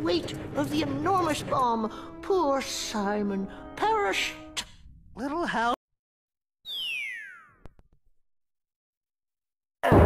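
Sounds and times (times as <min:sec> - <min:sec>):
falling whistle: 0:06.7 - 0:07.7.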